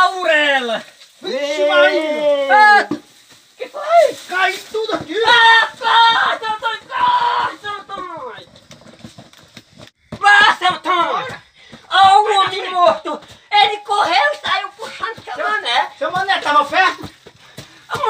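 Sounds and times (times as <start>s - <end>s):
men yelling: 0.0s - 3.0s, 3.6s - 8.5s, 10.1s - 18.0s.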